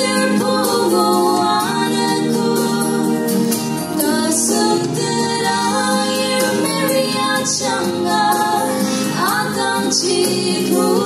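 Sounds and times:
instrumental accompaniment: 0:00.0 - 0:11.0
woman singing slow song: 0:00.0 - 0:11.0.

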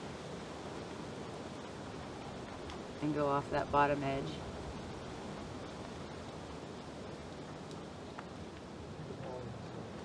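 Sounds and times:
steady outdoor hiss: 0:00.0 - 0:10.0
faint ticks: 0:07.4 - 0:10.0.

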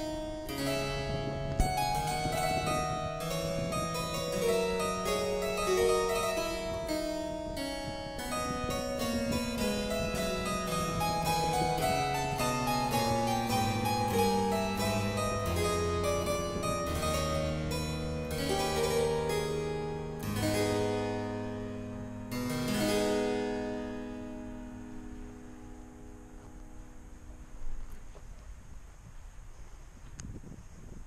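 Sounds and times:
solo keyboard music: 0:00.0 - 0:28.2
faint hiss: 0:00.0 - 0:31.0.

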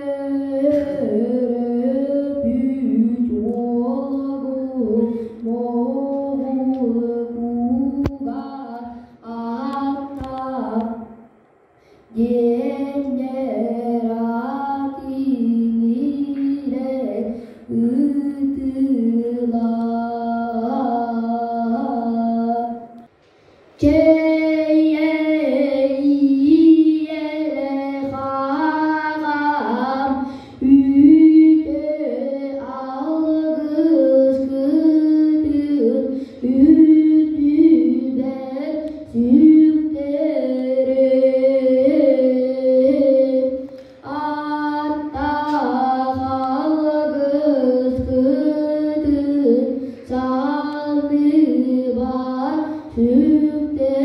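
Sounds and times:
boy singing unaccompanied: 0:00.0 - 0:11.2, 0:12.1 - 0:23.0, 0:23.8 - 0:54.0.

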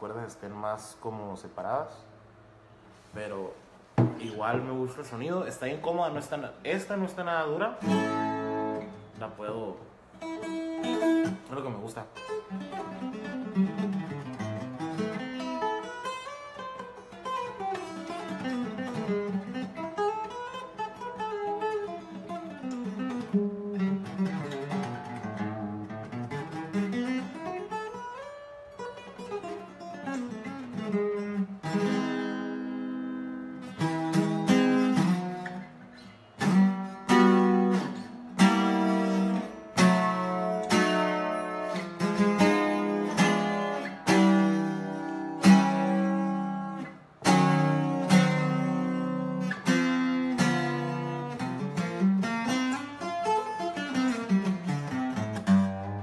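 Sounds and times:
twelve-string acoustic guitar: 0:03.8 - 0:56.0.

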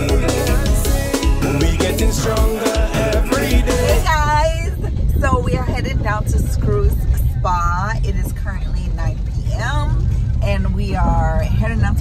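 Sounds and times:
car engine rumble: 0:00.0 - 0:12.0
road noise inside car: 0:03.8 - 0:12.0
woman talking: 0:03.9 - 0:12.0.

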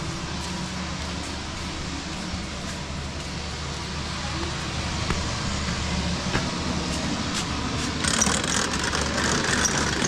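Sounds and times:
steady low rumble: 0:00.0 - 0:08.0
outdoor background hiss: 0:00.0 - 0:10.0.

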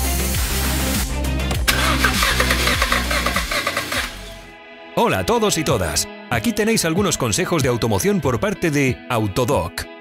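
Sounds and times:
background music: 0:00.0 - 0:10.0
car engine cranking and starting: 0:01.6 - 0:04.5.

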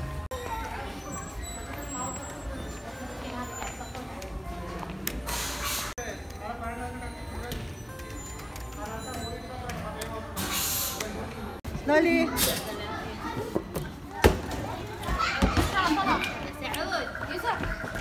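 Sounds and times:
children's voices playing: 0:00.3 - 0:03.2, 0:12.2 - 0:18.0.

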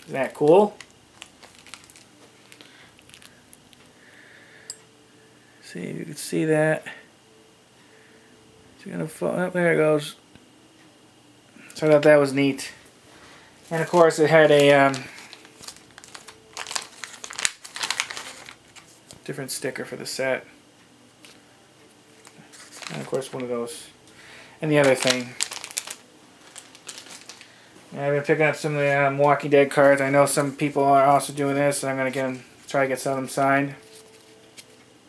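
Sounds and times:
packaging crinkling: 0:00.0 - 0:03.8, 0:13.6 - 0:19.2, 0:22.1 - 0:23.6, 0:24.6 - 0:27.6, 0:28.6 - 0:34.8.

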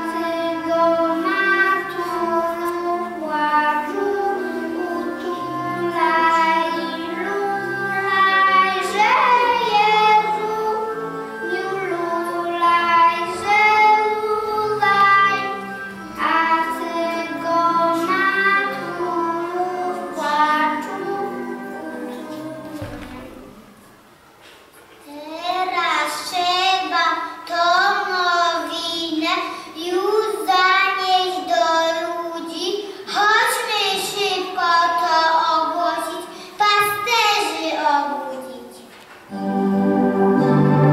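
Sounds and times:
children singing together: 0:00.0 - 0:23.9, 0:25.5 - 0:38.3
instrumental accompaniment: 0:00.0 - 0:25.0, 0:39.0 - 0:40.9.

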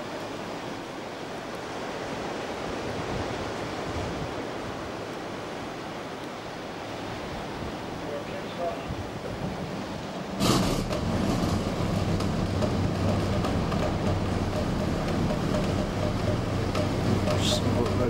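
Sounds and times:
diesel engines starting and idling: 0:10.4 - 0:18.0.

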